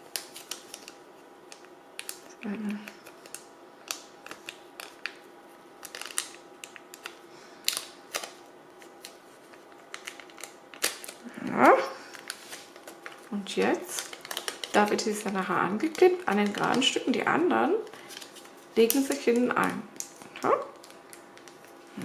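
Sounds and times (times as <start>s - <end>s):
plastic film crackling: 0.0s - 22.0s.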